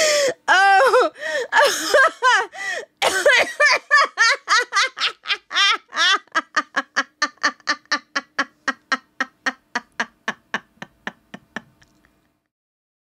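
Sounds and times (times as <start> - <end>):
woman laughing: 0.6 - 12.0.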